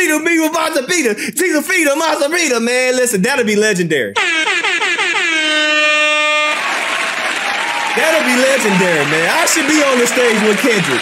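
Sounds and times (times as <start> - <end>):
air horn blast: 4.2 - 6.7
applause: 6.5 - 11.0.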